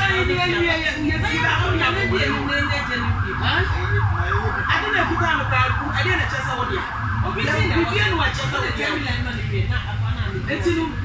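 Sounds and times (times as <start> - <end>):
siren yelping: 0.0 - 8.8
people talking: 0.0 - 11.0.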